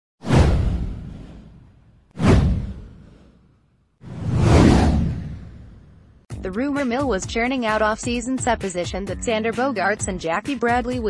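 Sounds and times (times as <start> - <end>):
deep rumble: 4.0 - 6.2
descending whoosh: 4.0 - 6.2.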